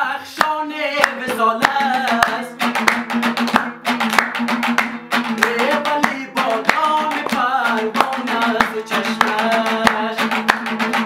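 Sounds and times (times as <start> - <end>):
man singing: 0.0 - 3.2, 5.2 - 11.0
hand claps: 0.4 - 11.0
lute strummed briskly: 0.9 - 11.0.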